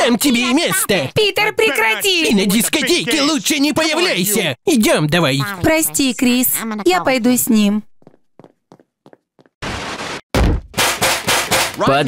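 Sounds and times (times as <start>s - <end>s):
faint footsteps: 7.8s - 9.6s
metal pan banging: 10.8s - 11.8s.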